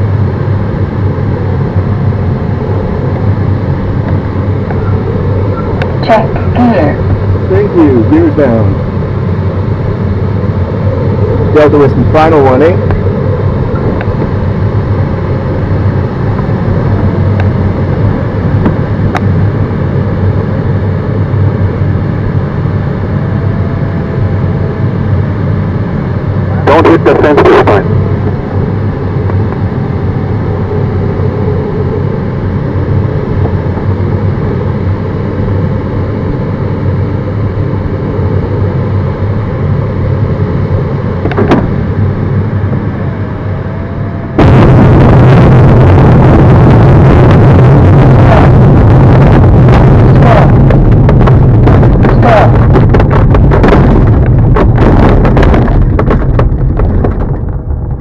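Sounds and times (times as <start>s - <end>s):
air rushing past cockpit: 0.0s - 58.0s
wheel rumbling over grass: 51.1s - 58.0s.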